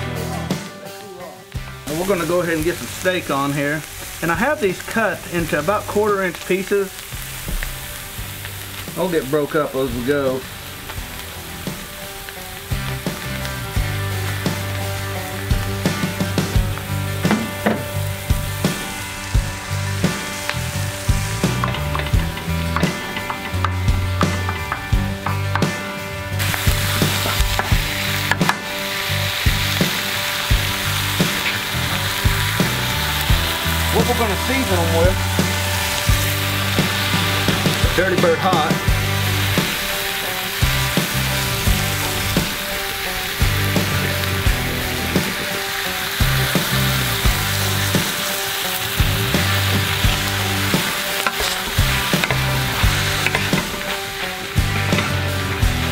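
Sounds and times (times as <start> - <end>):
meat and vegetables sizzling: 0.0 - 55.9.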